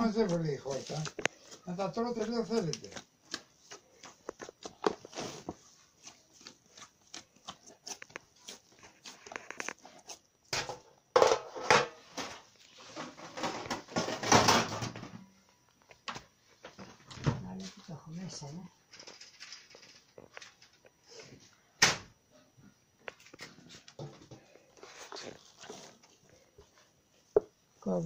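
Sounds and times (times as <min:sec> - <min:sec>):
rustling: 0:00.0 - 0:10.2, 0:23.2 - 0:27.3
hands kneading dough: 0:00.0 - 0:10.5, 0:24.6 - 0:28.0.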